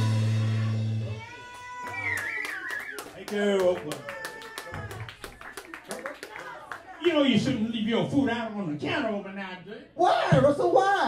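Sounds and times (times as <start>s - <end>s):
audience applauding: 0.4s - 7.1s.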